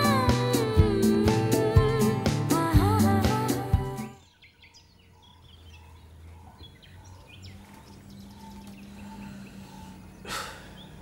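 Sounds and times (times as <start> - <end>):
birds chirping: 3.5 - 11.0.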